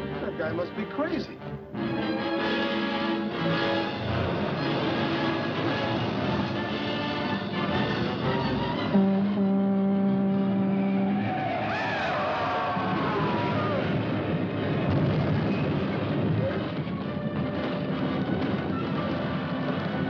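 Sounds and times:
orchestral music sustained chords: 0.0s - 11.4s.

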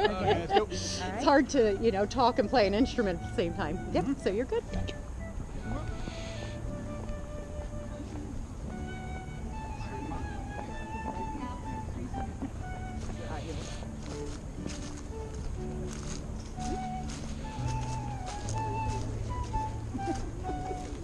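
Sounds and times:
slow instrumental processional music: 0.0s - 21.0s.

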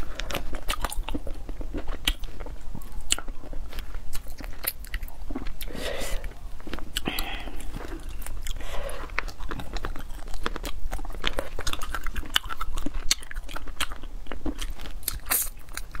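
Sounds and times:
chewing and crunching: 0.0s - 16.0s.

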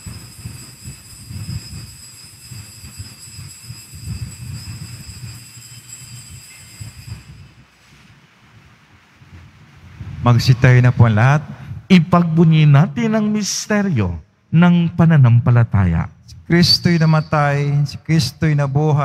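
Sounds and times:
altar bells ringing: 0.0s - 7.8s.

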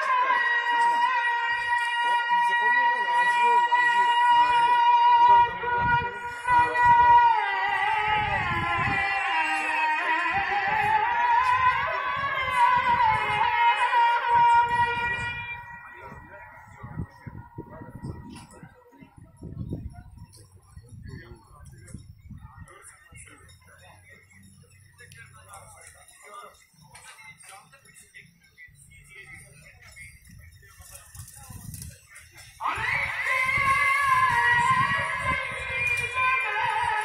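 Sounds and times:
voice reciting over loudspeakers: 0.0s - 37.0s.

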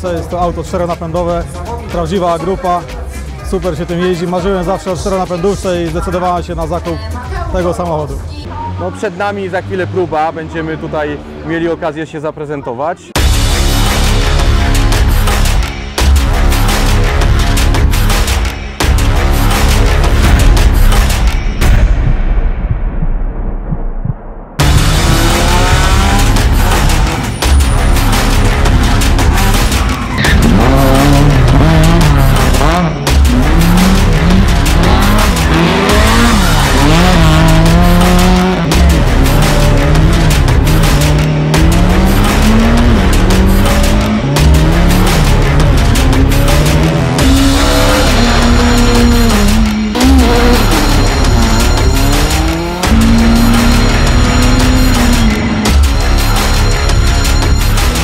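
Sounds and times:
background music: 0.0s - 58.0s
rally car engines revving: 8.0s - 12.5s, 24.6s - 58.0s.

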